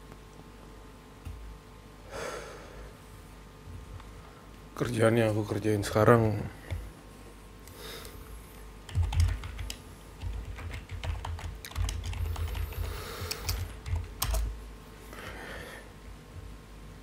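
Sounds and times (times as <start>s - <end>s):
computer keyboard typing: 8.9s - 14.6s.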